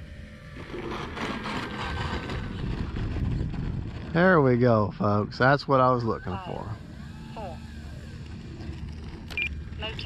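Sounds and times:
model plane electric motor whine: 0.0s - 10.0s
steady rushing noise: 0.0s - 10.0s.

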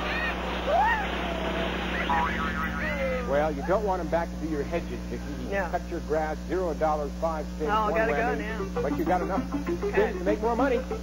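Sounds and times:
small lawnmower engine running: 0.0s - 11.0s.

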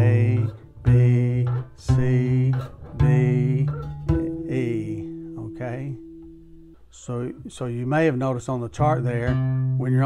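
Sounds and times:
acoustic guitar notes plucked: 0.0s - 10.0s.

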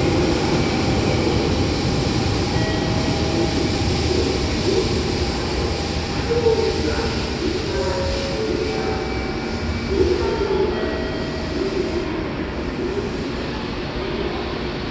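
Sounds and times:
electric train rumbling: 0.0s - 14.9s
voices: 2.7s - 14.8s.

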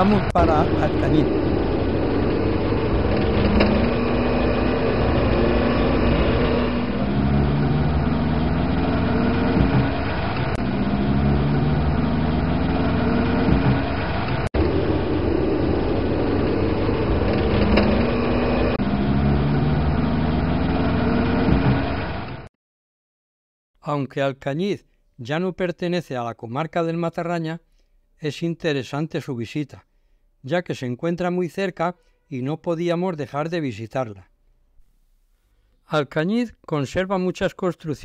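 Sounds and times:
car engine accelerating: 0.0s - 22.5s.

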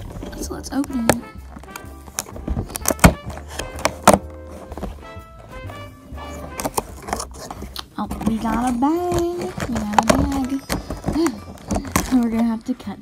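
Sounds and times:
background music: 0.0s - 13.0s
cardboard knocks and taps: 0.9s - 5.0s.

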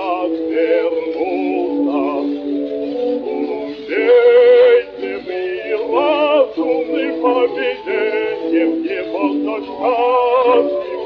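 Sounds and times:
held accompanying notes: 0.0s - 11.0s
man singing opera with vibrato: 0.0s - 11.0s.

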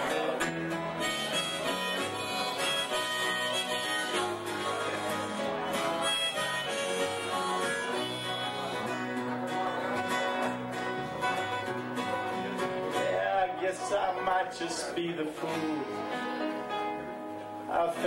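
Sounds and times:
electric bass: 0.0s - 13.3s
keyboard long held notes: 0.0s - 18.0s
strummed acoustic guitar: 0.0s - 18.0s.

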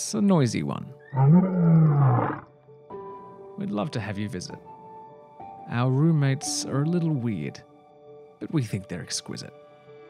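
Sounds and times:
soft background music: 0.0s - 10.0s
lion roaring: 1.0s - 2.5s.

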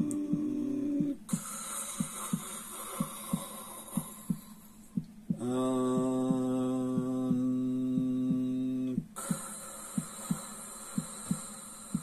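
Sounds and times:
man chanting a mantra tone: 0.0s - 1.2s, 5.4s - 9.1s
heartbeat-like thumps: 0.0s - 12.0s
long breathy in-breath: 1.3s - 4.9s, 9.2s - 12.0s.

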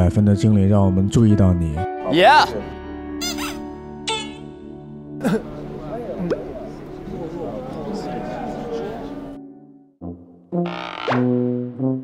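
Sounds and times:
background music chord: 0.0s - 10.6s
squeaky comic sound effects: 3.2s - 4.5s, 10.6s - 11.3s.

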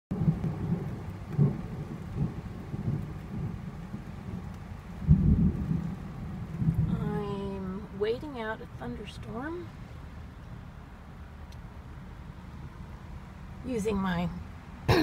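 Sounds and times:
thunder rumbling: 0.1s - 10.3s
rain on vehicle roof: 0.1s - 14.9s.

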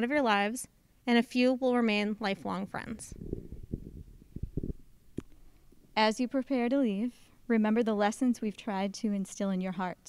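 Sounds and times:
microphone handling thumps: 3.1s - 5.8s
microphone knocks: 3.2s - 5.3s.

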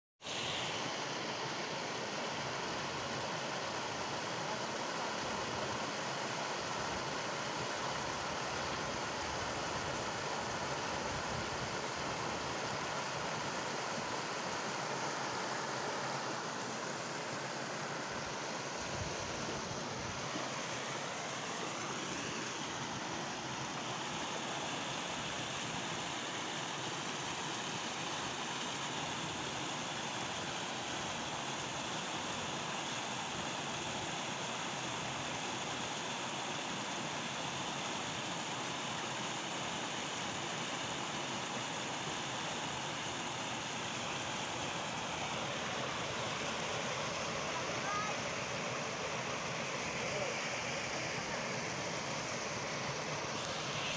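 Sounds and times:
water gushing from sluice gate: 0.2s - 53.9s.

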